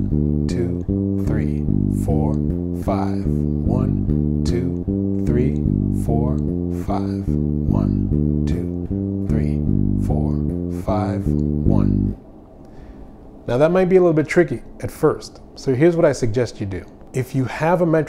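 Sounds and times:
electric bass playing: 0.0 - 12.2
man counting: 0.0 - 12.2, 13.5 - 18.0.

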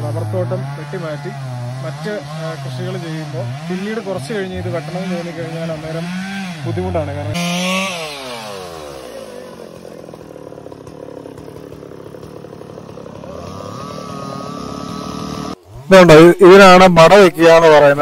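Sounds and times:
chainsaw engine revving: 0.0 - 18.0.

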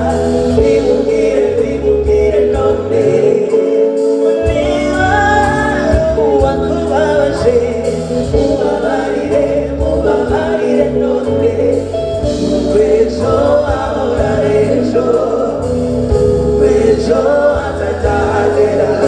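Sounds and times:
backing singers harmonizing: 0.0 - 19.0
live band playing: 0.0 - 19.0
woman singing lead: 0.0 - 19.0.

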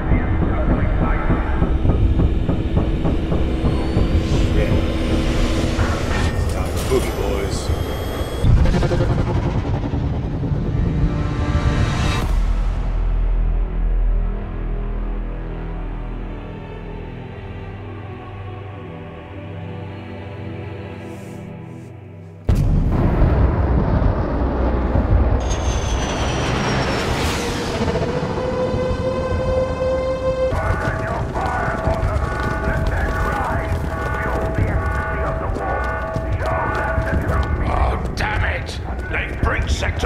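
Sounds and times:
deep engine rumble: 0.0 - 15.9
dark sustained music: 0.0 - 40.0
distant battle: 30.3 - 40.0.

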